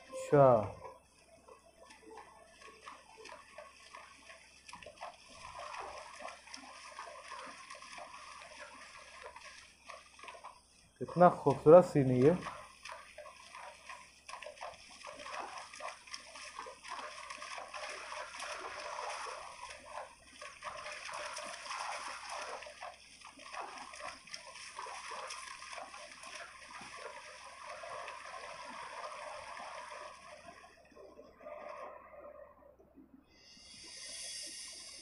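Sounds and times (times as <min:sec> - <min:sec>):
running water splashing: 0:00.0 - 0:31.9.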